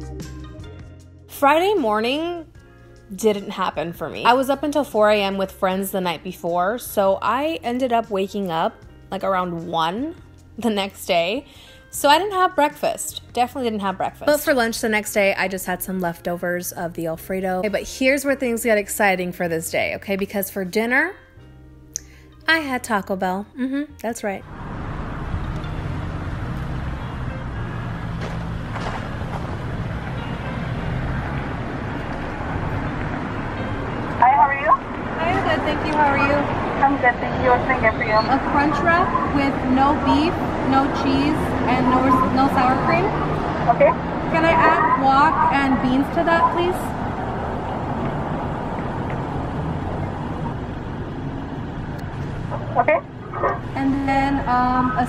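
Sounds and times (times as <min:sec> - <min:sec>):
faint road traffic: 0:00.0 - 0:55.0
person speaking: 0:23.6 - 0:24.0, 0:43.7 - 0:46.9.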